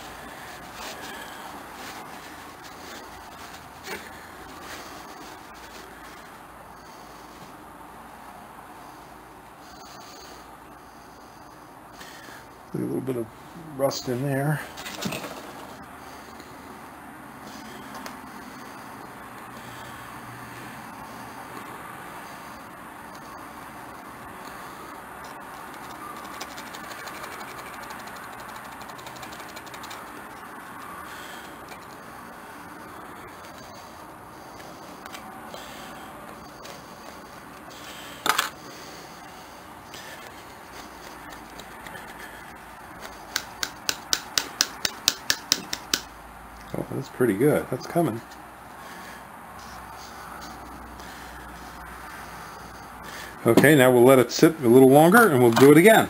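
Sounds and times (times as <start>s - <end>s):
wire scratching rust: 25.2s - 32.2s.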